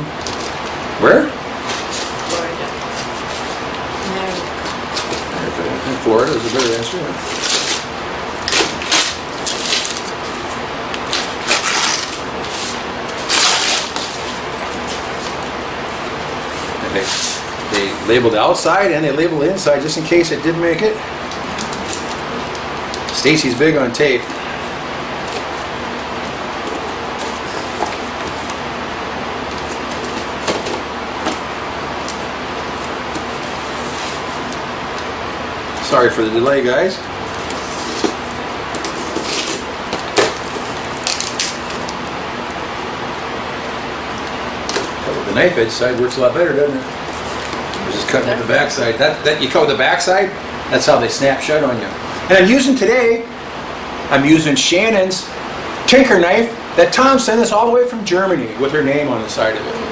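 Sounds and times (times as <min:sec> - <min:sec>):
steady background hiss: 0:00.0 - 0:59.9
paper and tape crackling: 0:01.6 - 0:18.3, 0:20.7 - 0:28.6, 0:29.4 - 0:35.1, 0:37.3 - 0:42.1
knife cutting packing tape: 0:06.3 - 0:10.2, 0:11.0 - 0:15.0, 0:37.4 - 0:42.0.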